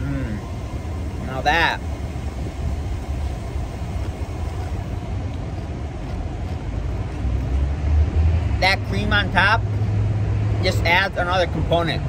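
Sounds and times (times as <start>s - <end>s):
car engines rumbling: 0.0s - 12.0s.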